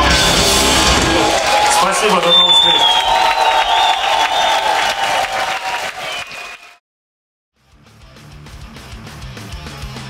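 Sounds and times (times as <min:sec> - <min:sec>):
crowd applauding and cheering: 0:00.0 - 0:06.8.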